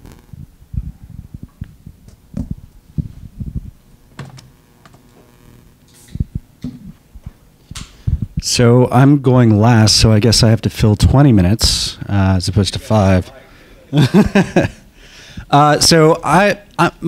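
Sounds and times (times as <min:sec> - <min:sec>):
low thumps and knocks: 0:00.7 - 0:05.0.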